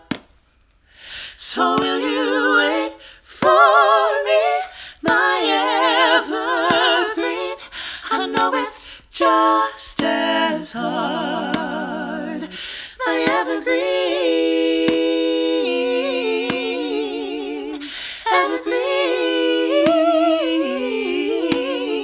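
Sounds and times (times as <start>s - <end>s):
singer breathing: 0.8s - 1.4s, 4.7s - 5.0s, 7.6s - 8.1s, 12.5s - 13.0s, 17.8s - 18.3s
woman singing a cappella harmony: 1.3s - 22.0s.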